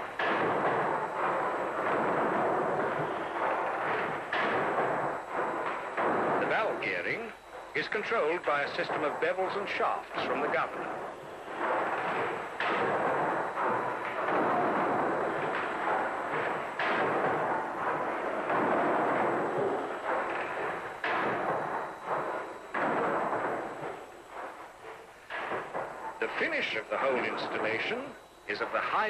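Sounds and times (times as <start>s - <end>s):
steam pumping engine running: 0.0s - 29.0s.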